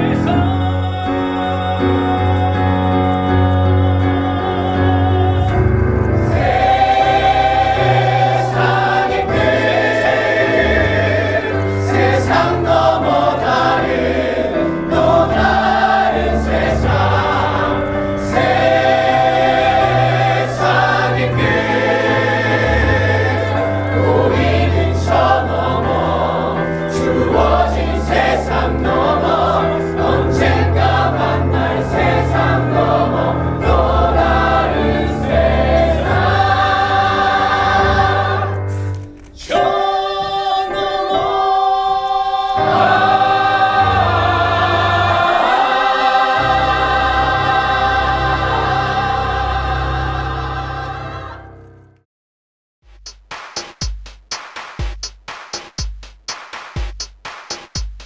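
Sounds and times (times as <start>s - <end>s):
men and women singing in chorus: 0.0s - 51.6s
musical accompaniment: 0.0s - 52.0s, 52.9s - 58.0s.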